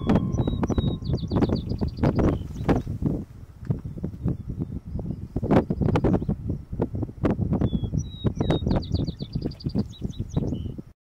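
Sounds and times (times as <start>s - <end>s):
sparrow singing: 0.0s - 3.0s, 7.6s - 10.8s
wind buffeting microphone: 0.0s - 11.0s.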